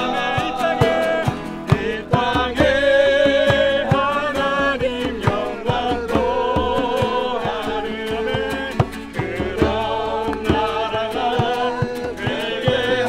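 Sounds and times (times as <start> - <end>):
acoustic guitars strumming: 0.0 - 13.0
djembe strikes: 0.0 - 13.0
group singing worship song: 0.0 - 13.0.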